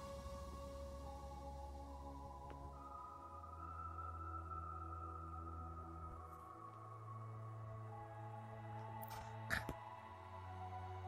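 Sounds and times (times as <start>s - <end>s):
ambient music of held chords: 0.0s - 11.0s.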